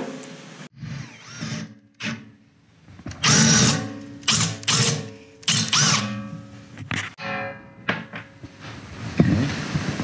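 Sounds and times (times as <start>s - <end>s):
drill bit cutting metal: 3.2s - 6.2s.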